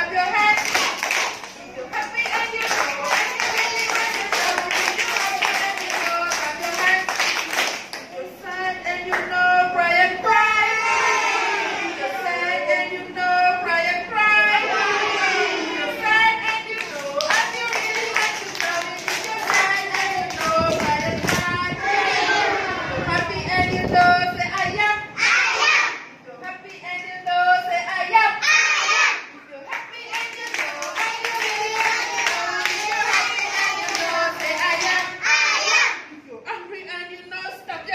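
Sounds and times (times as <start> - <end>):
children's song singing: 0.0 - 37.9
people clapping hands: 0.4 - 8.2, 16.4 - 21.5, 29.7 - 35.2.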